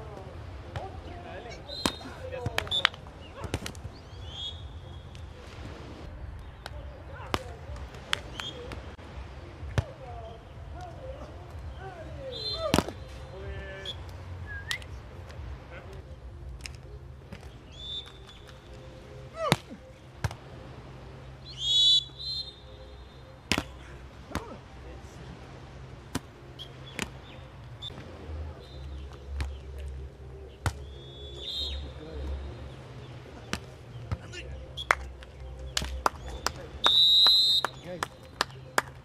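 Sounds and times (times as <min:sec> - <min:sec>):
shrill whistle: 0:04.2 - 0:04.7, 0:21.5 - 0:22.6, 0:31.0 - 0:31.8, 0:36.8 - 0:37.8
high chirp-like tone: 0:21.4 - 0:23.4
hand hitting volleyball: 0:23.5 - 0:23.7.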